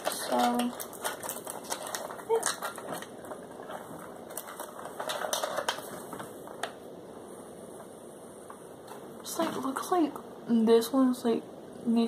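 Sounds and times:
hands handling packaging: 0.0s - 6.9s.

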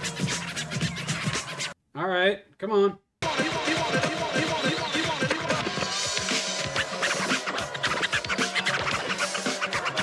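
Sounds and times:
backing track music: 0.0s - 1.8s, 3.2s - 10.0s
vinyl record scratching: 0.0s - 1.8s, 3.2s - 10.0s.

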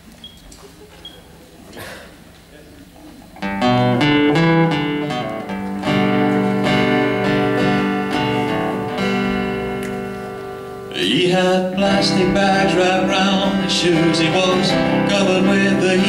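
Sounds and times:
keyboard chords: 3.4s - 16.0s
strummed acoustic guitar: 3.4s - 16.0s.

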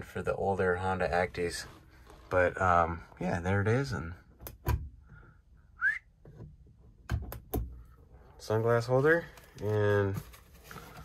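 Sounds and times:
short rising whistle: 5.8s - 6.2s.

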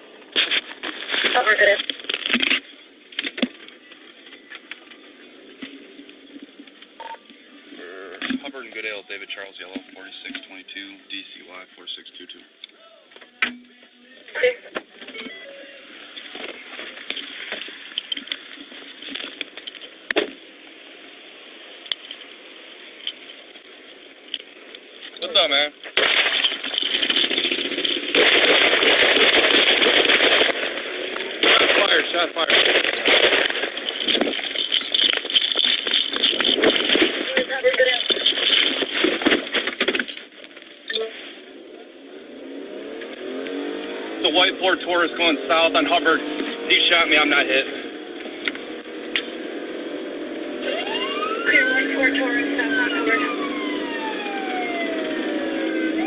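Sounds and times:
crackling distorted garbled voices: 0.4s - 20.2s, 24.4s - 42.0s
car engine accelerating: 41.4s - 56.0s.

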